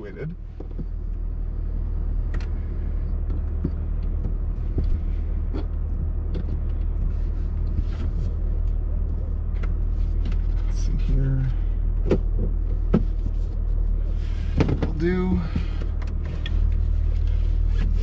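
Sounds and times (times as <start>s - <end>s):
car engine idling: 0.0s - 18.0s
small clicks and knocks: 3.2s - 8.8s.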